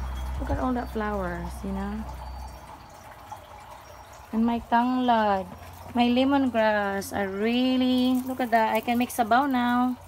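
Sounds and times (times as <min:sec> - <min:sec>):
water dripping: 0:00.0 - 0:10.0.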